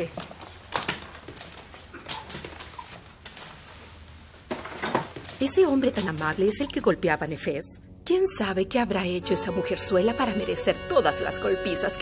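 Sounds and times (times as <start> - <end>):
footsteps in a room: 0.0 - 6.4
clothing rustling: 0.2 - 6.4.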